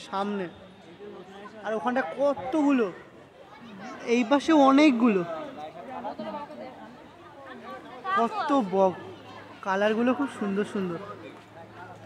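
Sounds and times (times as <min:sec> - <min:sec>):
faint chatter of voices: 0:00.0 - 0:12.0.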